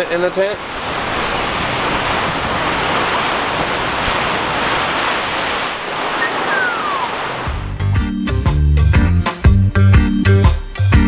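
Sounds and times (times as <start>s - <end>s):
wind and rain on tent: 0.0s - 7.7s
falling whistle: 6.2s - 7.2s.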